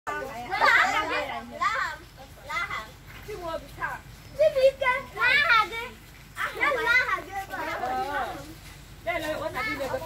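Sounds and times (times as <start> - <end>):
children talking and calling out: 0.1 - 10.0.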